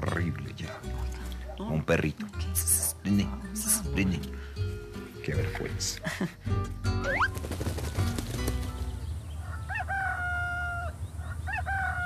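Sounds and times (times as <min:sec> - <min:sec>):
low background music: 0:00.0 - 0:11.1
rooster crowing: 0:09.4 - 0:12.0.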